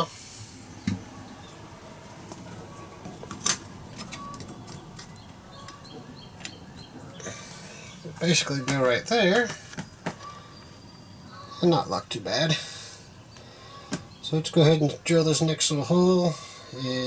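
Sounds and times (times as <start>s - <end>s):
faint steady background noise: 0.0s - 17.0s.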